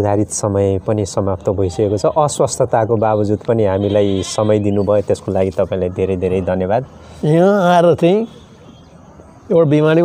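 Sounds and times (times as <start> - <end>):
man talking in a low voice: 0.0 - 8.4, 9.4 - 10.0.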